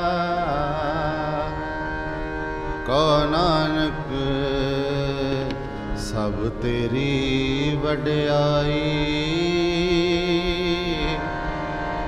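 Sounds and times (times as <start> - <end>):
harmonium accompaniment: 0.0 - 12.0
person singing a hymn: 0.0 - 12.0.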